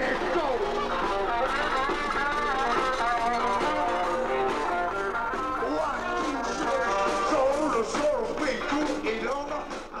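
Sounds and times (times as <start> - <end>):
bending electric guitar notes: 0.0 - 7.4
rock band playing live: 0.0 - 10.0.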